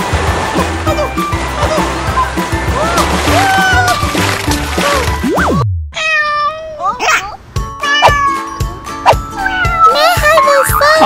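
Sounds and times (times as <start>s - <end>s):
kitten meowing: 6.0s - 7.0s, 7.8s - 8.5s, 9.1s - 10.7s.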